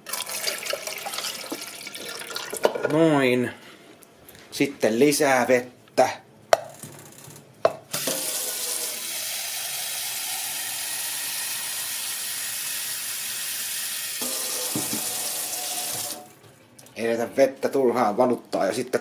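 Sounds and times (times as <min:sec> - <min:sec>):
water running into plastic jug: 0:00.0 - 0:02.7, 0:14.2 - 0:16.4.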